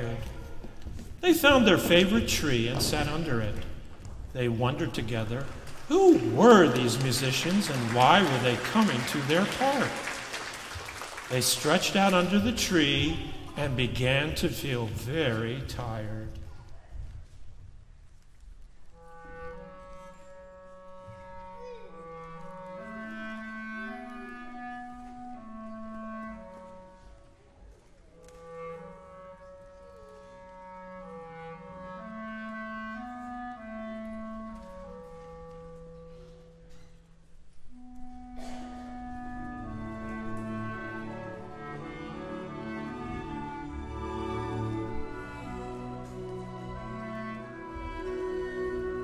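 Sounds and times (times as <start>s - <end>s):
orchestra playing: 0.0s - 16.3s, 19.0s - 27.2s, 28.2s - 36.9s, 37.6s - 49.0s
clarinet melody: 4.4s - 16.0s, 18.9s - 49.0s.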